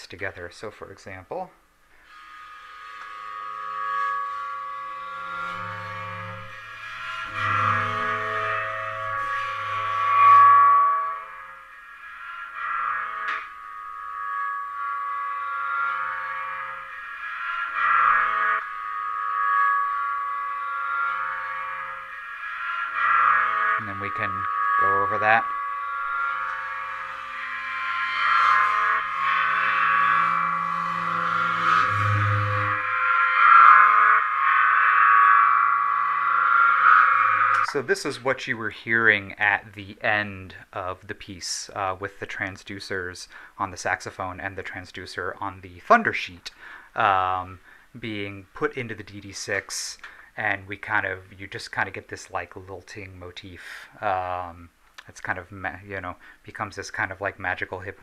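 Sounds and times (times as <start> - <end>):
looped ringing cymbal motif: 3.2 - 38.7
quick clicks with sliding pitches: 23.0 - 38.2.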